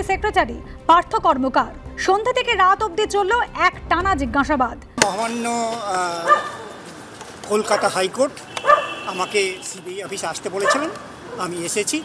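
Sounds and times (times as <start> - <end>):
man talking: 5.0 - 8.5, 9.1 - 12.0
dog barking in short yelps: 8.6 - 9.0, 10.6 - 11.0.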